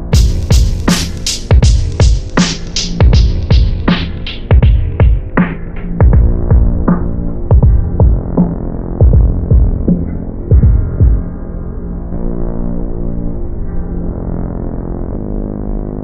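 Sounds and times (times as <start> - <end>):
heavy kick and snare drums: 0.0 - 11.3
sustained low synth chord: 6.2 - 16.0.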